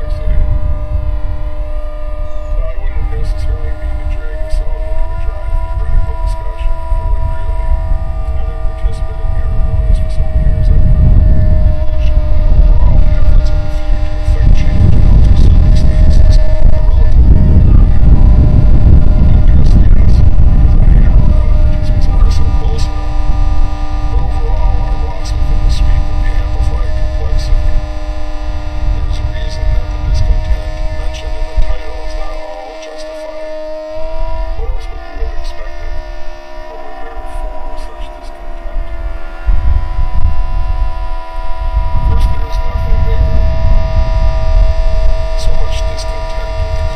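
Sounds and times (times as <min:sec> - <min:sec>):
layered drone of steady tones: 0:00.0 - 0:46.9
loud low noise: 0:00.0 - 0:46.9.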